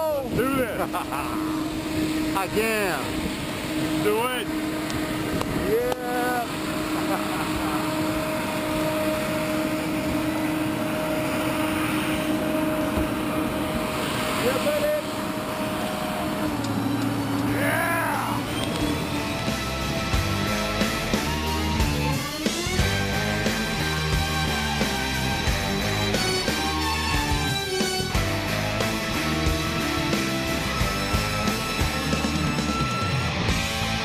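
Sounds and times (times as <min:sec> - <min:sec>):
turboprop plane engine drone: 0:00.0 - 0:34.0
people whooping and laughing: 0:05.6 - 0:08.3, 0:17.4 - 0:19.1
music with steady beat: 0:19.1 - 0:34.0.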